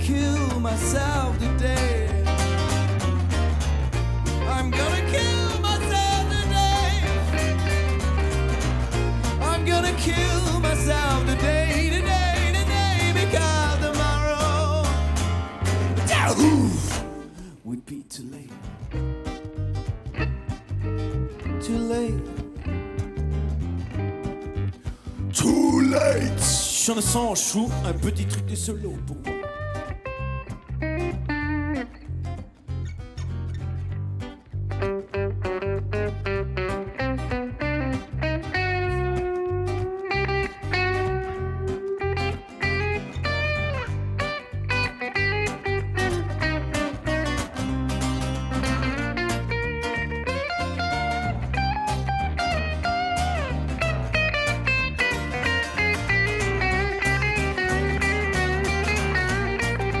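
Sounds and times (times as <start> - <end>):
electric bass line: 0.0 - 17.3, 18.7 - 60.0
guitar accompaniment: 0.0 - 60.0
lead guitar solo: 1.0 - 17.6, 18.6 - 28.1, 28.9 - 60.0.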